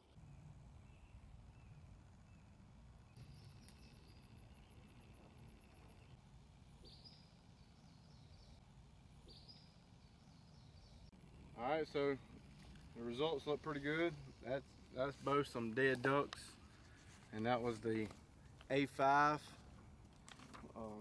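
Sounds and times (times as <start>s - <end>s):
faint bird chirps: 0.0s - 6.2s, 6.8s - 8.6s, 9.2s - 11.4s
low steady rumble: 0.0s - 18.7s.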